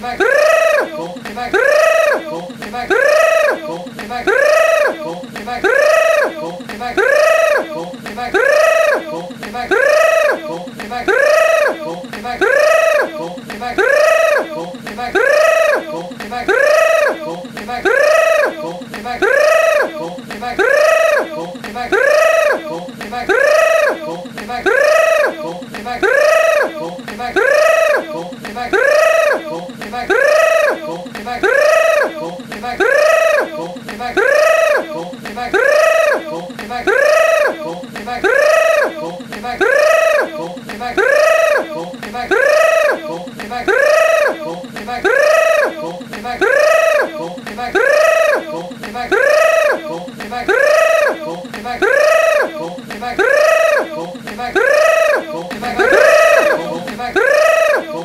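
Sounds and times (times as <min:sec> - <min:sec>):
high-pitched looping cry: 0:55.5 - 0:57.8.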